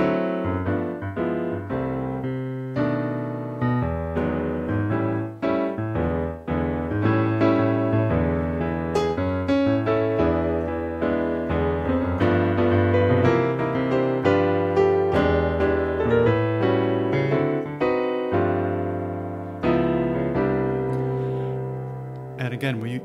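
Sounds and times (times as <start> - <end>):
piano jazz chords: 0.0 - 23.0.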